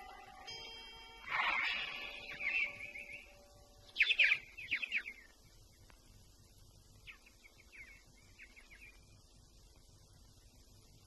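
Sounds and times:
birds chirping: 0.0s - 6.0s, 6.9s - 9.3s.

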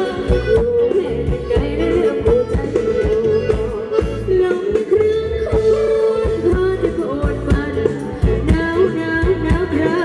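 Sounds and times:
wavering high lead melody: 0.0s - 10.0s.

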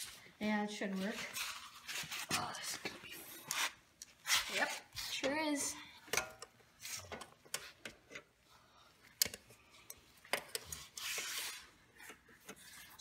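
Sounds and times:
soft rustle: 0.0s - 5.2s
pliers clicking and scraping metal: 9.2s - 11.4s.

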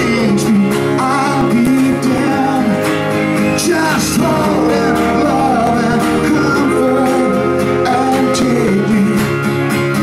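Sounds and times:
country-rock band playing: 0.0s - 10.0s
trumpet melody: 2.4s - 9.1s.

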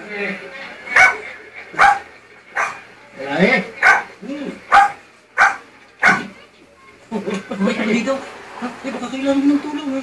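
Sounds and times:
dog barking through tv speaker: 0.9s - 2.9s, 3.8s - 6.3s.

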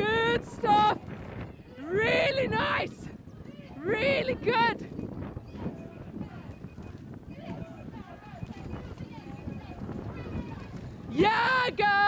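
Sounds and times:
rough outdoor rumble: 0.0s - 12.0s.

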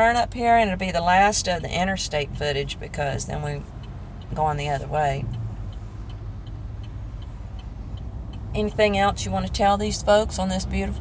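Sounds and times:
low road and engine drone: 0.0s - 11.0s
turn signal ticking: 0.0s - 11.0s.

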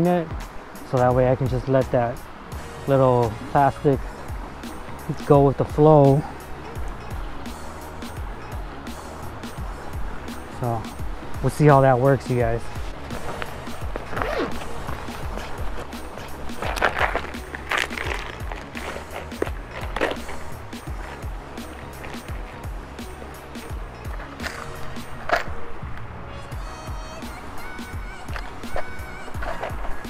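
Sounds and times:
background music: 0.0s - 30.0s
canvas pack rustling: 12.5s - 25.5s, 29.2s - 30.0s.

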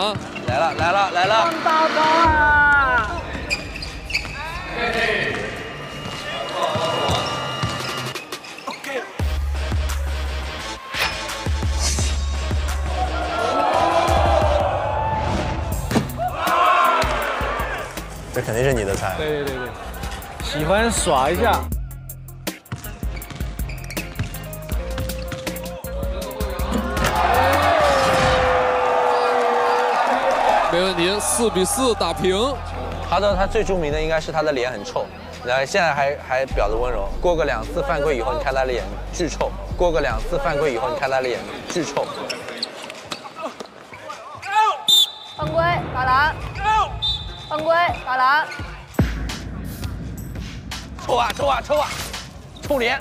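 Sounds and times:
crowd cheering and shouting: 12.3s - 18.2s, 25.6s - 34.2s.

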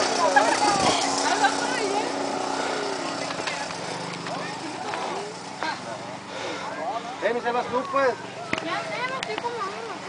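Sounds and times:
dirt bike engine idling: 0.0s - 10.0s
voices chattering: 0.0s - 10.0s.

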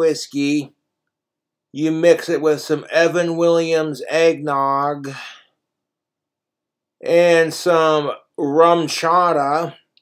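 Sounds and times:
man speaking: 0.0s - 0.8s, 1.7s - 5.5s, 7.0s - 10.0s
breathy exhale: 5.1s - 5.6s.

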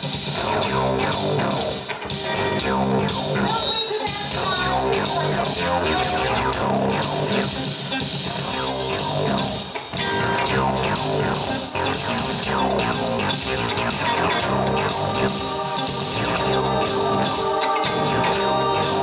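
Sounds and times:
live band playing instrumental: 0.0s - 19.0s.

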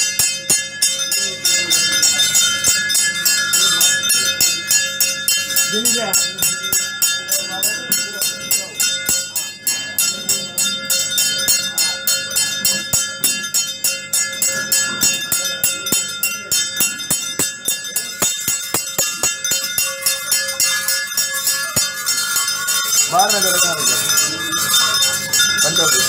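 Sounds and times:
metal bells jingling: 0.0s - 26.0s
steady held tone: 0.0s - 26.0s.

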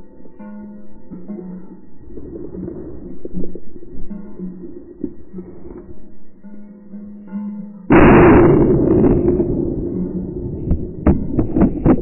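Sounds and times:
plucked-string music: 0.0s - 12.0s.

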